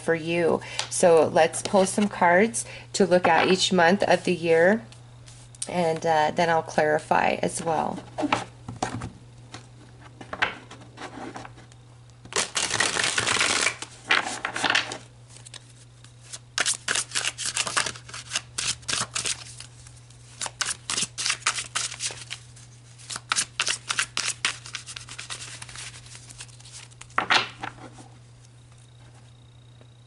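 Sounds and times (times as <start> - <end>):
steady low hum: 0.0 - 30.0
cards riffling: 12.3 - 27.6.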